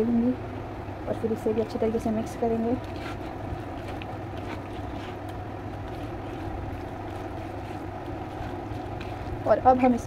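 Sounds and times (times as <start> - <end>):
low hum and hiss: 0.0 - 10.0
hand mixing food squishes: 2.1 - 10.0.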